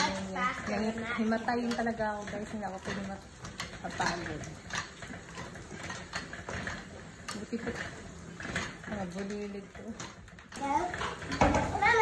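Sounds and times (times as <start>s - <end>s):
flywheel mechanical hum: 0.0s - 12.0s.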